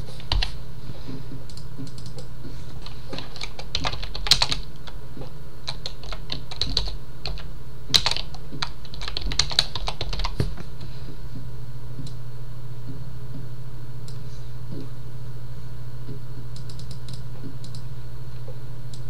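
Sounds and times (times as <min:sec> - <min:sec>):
keyboard typing: 0:00.0 - 0:00.6, 0:01.3 - 0:10.9, 0:16.6 - 0:17.9
steady low hum: 0:00.0 - 0:19.0.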